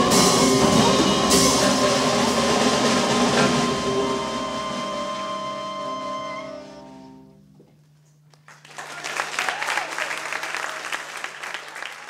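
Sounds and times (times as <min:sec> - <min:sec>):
jazz ensemble held chord: 0:00.0 - 0:07.5
audience applause: 0:08.4 - 0:12.0.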